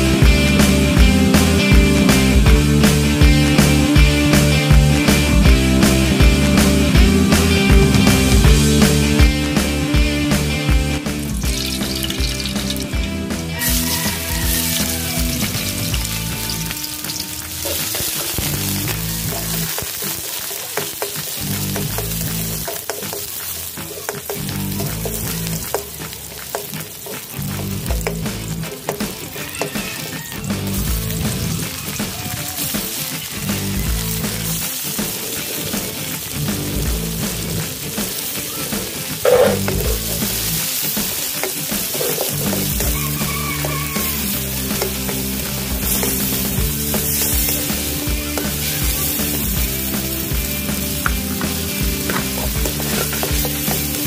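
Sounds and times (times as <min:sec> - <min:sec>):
background music: 0:00.0 - 0:54.0
vegetables sizzling in hot oil: 0:07.3 - 0:54.0.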